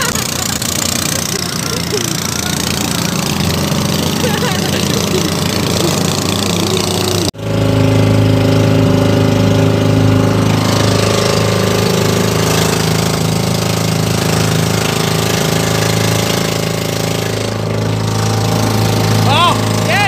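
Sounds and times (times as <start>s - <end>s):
boat engine running steadily: 0.0s - 20.0s.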